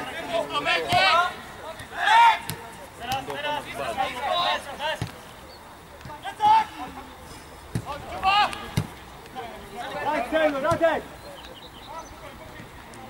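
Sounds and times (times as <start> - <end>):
players shouting: 0.0 - 13.0.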